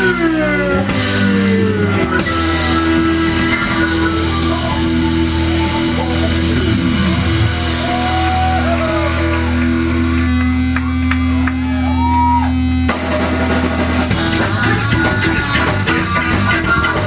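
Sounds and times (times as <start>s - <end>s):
live rock band playing: 0.0s - 12.0s, 12.6s - 17.0s
guitar notes sliding down: 0.0s - 17.0s.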